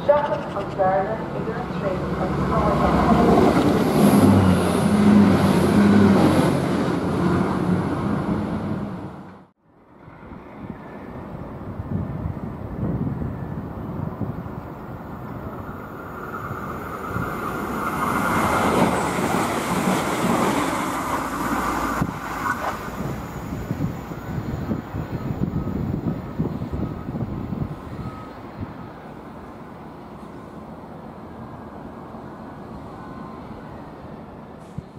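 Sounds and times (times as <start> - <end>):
train passing at speed: 0.0 - 34.9.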